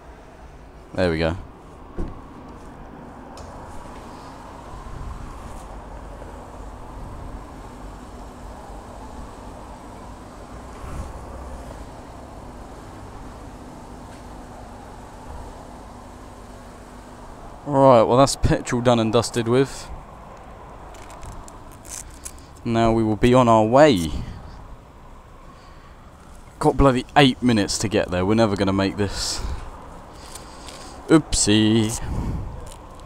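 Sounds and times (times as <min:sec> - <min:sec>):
fuel pump hum: 0:00.0 - 0:18.3, 0:23.8 - 0:33.0.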